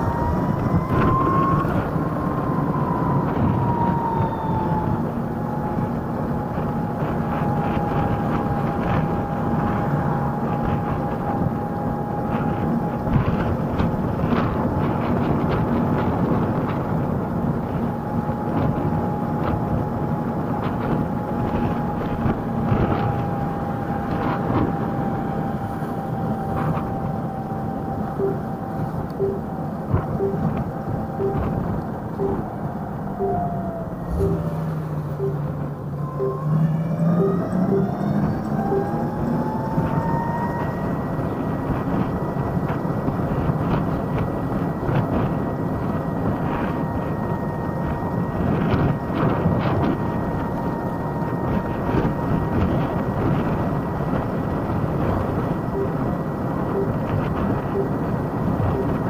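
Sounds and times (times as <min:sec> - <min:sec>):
wind and road noise: 0:00.0 - 0:59.0
turn signal beeping: 0:28.1 - 0:40.6, 0:55.5 - 0:59.0.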